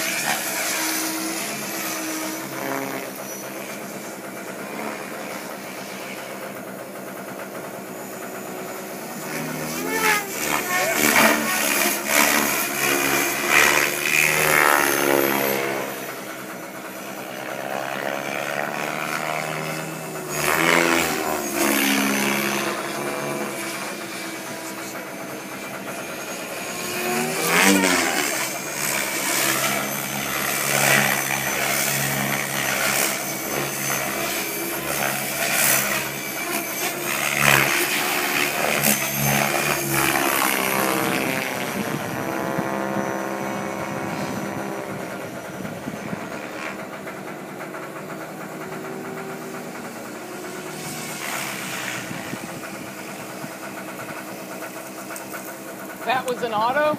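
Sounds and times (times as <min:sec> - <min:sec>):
model helicopter rotor spinning: 0:00.0 - 0:56.9.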